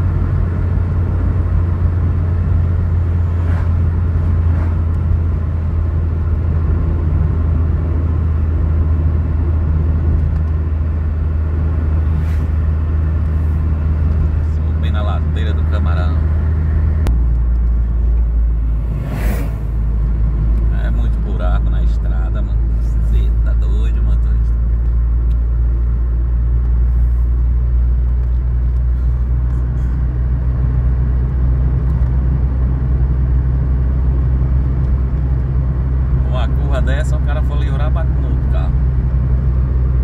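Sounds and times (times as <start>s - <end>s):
car engine rumble: 0.0s - 40.0s
tyres on asphalt: 0.0s - 40.0s
passing truck whoosh: 1.0s - 5.9s, 11.6s - 14.4s, 18.3s - 20.7s.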